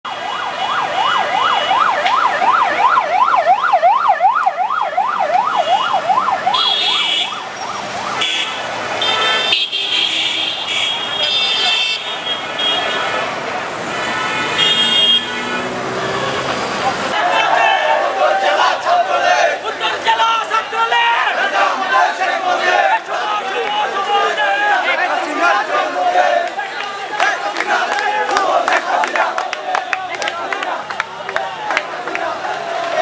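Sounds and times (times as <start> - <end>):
traffic noise: 0.0 - 33.0
electronic yelp siren: 0.1 - 8.2
vehicle horns blasting: 6.5 - 7.4, 8.2 - 16.9.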